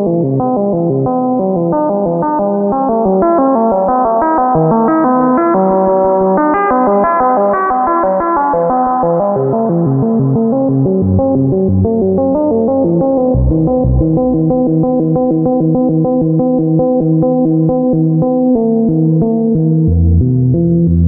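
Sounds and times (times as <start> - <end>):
synthesizer arpeggio with reverb: 0.0 - 21.0.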